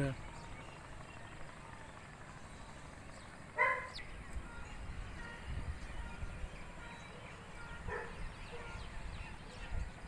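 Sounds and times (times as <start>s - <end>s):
faint outdoor background: 0.0s - 10.0s
dog barking: 3.6s - 4.0s, 7.9s - 8.7s.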